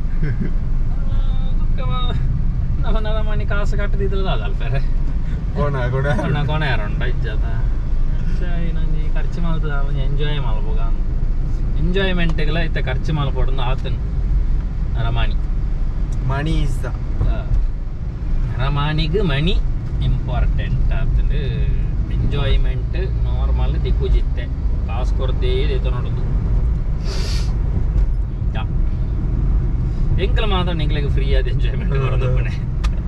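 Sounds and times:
car engine and tyres rumbling: 0.0s - 33.0s.

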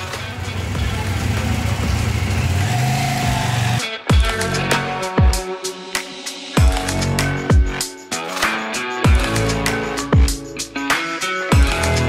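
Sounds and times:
motorcycle engine riding off: 0.0s - 3.8s.

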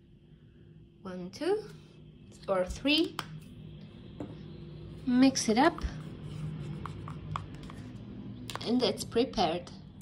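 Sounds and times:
spoon stirring paint in cup: 5.4s - 8.8s.

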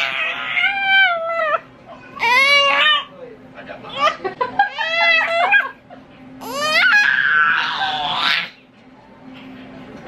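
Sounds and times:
baby squealing: 2.2s - 3.1s, 6.4s - 8.5s.

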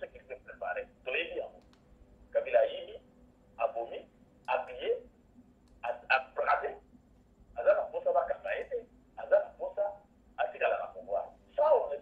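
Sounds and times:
person talking: 3.6s - 5.1s, 7.6s - 12.0s.

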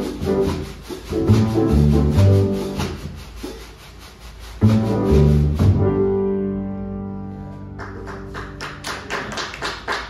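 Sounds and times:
upright double bass notes: 0.0s - 3.4s, 4.5s - 8.6s
drum kit keeping a pulse: 0.0s - 8.6s.

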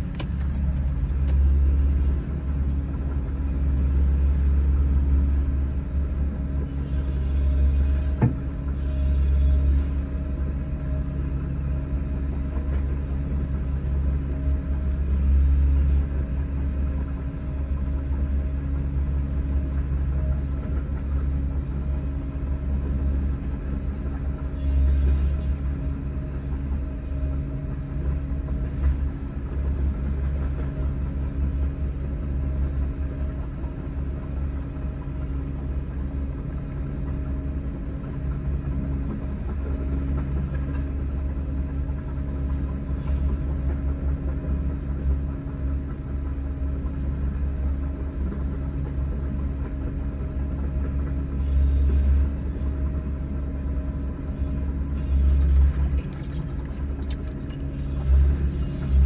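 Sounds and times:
engine rumble: 0.0s - 59.0s.

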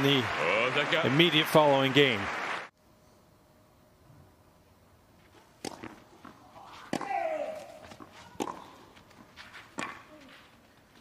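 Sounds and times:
tennis racket hitting ball: 5.6s - 10.2s.

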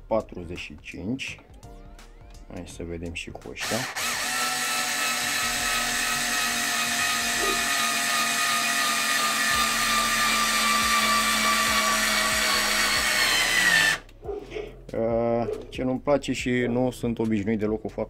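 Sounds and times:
cordless screwdriver whining: 3.6s - 14.2s.

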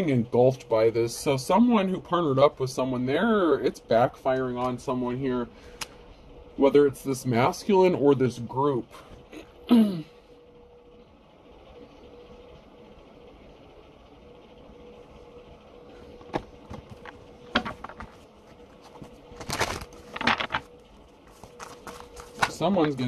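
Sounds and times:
faint steady hum: 0.0s - 23.0s
person clearing throat: 9.4s - 10.1s.

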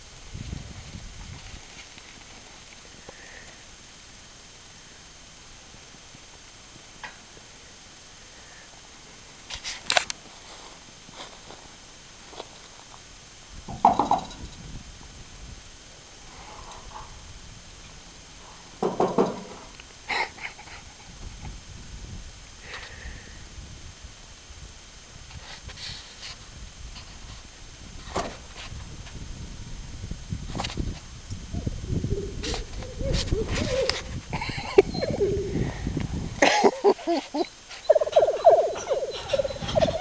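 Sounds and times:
dog whining: 32.3s - 35.6s, 36.9s - 40.0s.

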